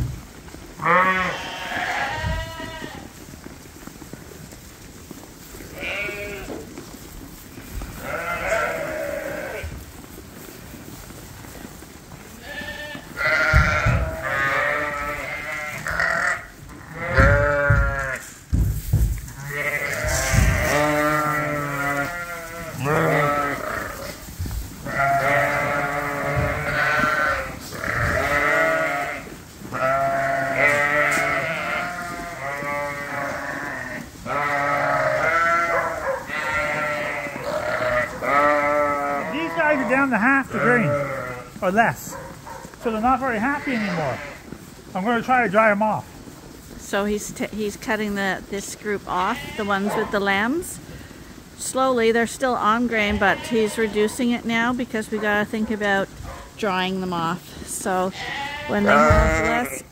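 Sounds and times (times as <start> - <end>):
sheep bleating: 0.8 - 3.1, 5.7 - 6.6, 8.0 - 9.7, 12.4 - 18.3, 19.4 - 24.2, 24.8 - 41.9, 42.8 - 45.7, 49.0 - 50.6, 52.7 - 54.2, 57.9 - 59.9.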